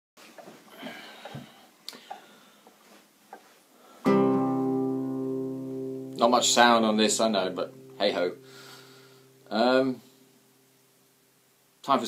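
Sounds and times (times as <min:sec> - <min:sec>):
acoustic guitar chord strummed: 0:04.0 - 0:11.4.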